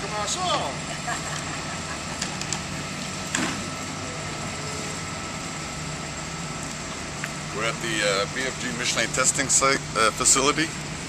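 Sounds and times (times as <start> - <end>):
low mechanical drone: 0.0 - 11.0.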